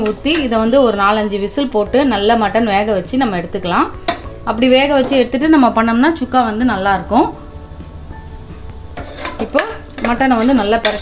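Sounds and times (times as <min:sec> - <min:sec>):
spatula scraping in pot: 0:08.9 - 0:11.0.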